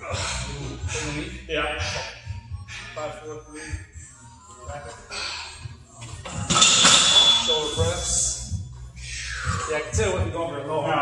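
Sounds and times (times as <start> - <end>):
low voices: 0.0 - 11.0
high metallic ring: 6.5 - 7.9.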